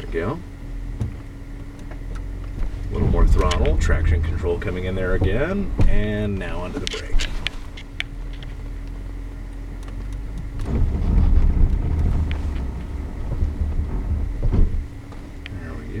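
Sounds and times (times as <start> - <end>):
car engine hum: 0.0 - 16.0
tyres and suspension knocking: 0.9 - 6.5.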